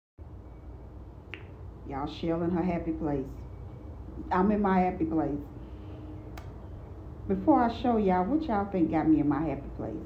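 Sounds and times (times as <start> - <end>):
low steady background rumble: 0.2 - 10.0
woman speaking: 1.8 - 3.5, 4.1 - 5.6, 7.2 - 10.0.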